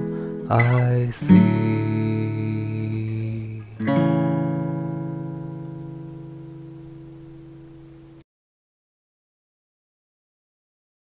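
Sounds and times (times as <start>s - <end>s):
acoustic guitar chords: 0.0s - 8.2s.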